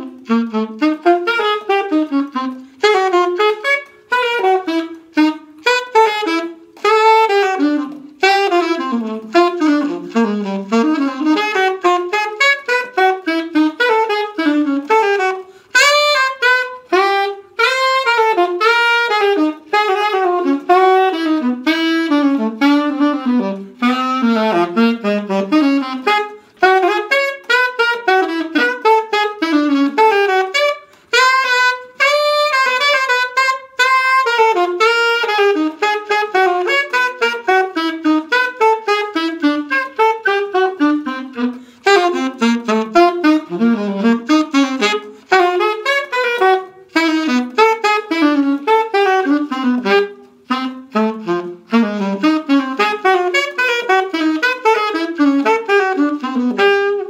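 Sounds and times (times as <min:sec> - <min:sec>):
alto saxophone playing jazz: 0:00.0 - 0:57.0.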